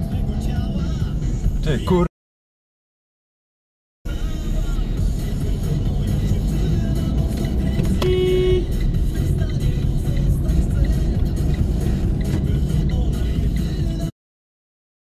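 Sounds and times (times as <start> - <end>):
car engine and road rumble: 0.0 - 2.1, 4.1 - 14.1
music from car radio: 0.0 - 2.1, 4.1 - 14.1
car horn toot: 7.7 - 8.9.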